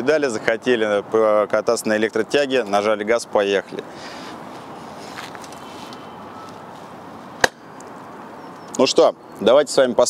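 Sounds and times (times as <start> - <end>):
street ambience: 0.0 - 10.0.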